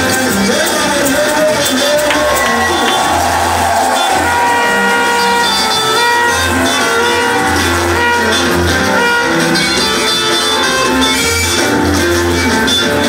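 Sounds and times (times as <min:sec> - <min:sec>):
electric guitar: 0:00.0 - 0:13.0
voices singing: 0:01.4 - 0:04.5
bass line: 0:01.4 - 0:13.0.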